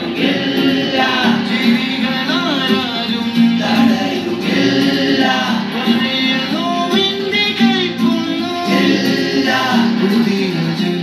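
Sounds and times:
choir voices singing: 0.0s - 2.4s, 3.4s - 6.6s, 8.6s - 11.0s
backing music: 0.0s - 11.0s.

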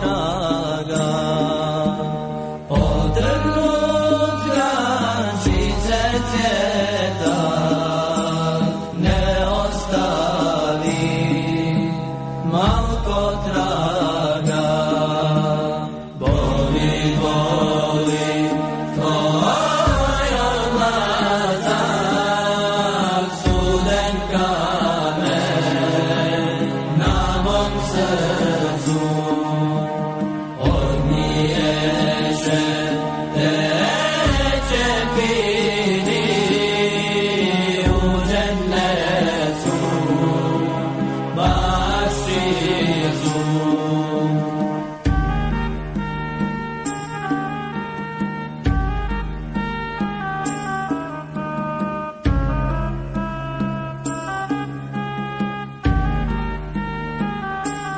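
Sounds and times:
religious chanting: 0.0s - 46.1s.

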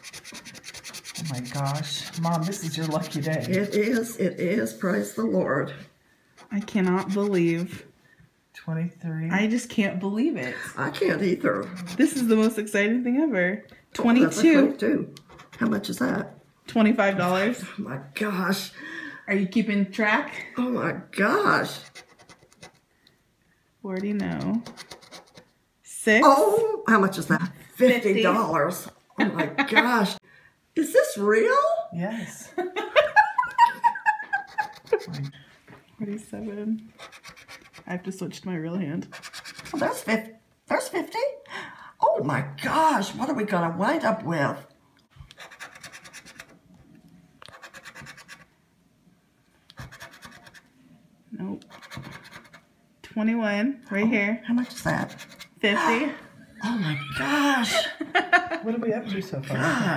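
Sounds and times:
scraper rubbing lottery ticket: 0.0s - 4.7s, 6.4s - 7.7s, 21.7s - 22.8s, 24.2s - 25.5s, 34.4s - 35.4s, 37.0s - 37.9s, 45.4s - 46.5s, 47.5s - 48.5s, 51.7s - 52.6s, 54.7s - 55.5s.

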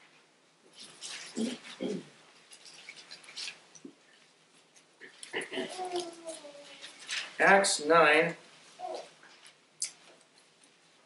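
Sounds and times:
thin pages rustling: 0.7s - 5.0s, 5.6s - 7.5s.

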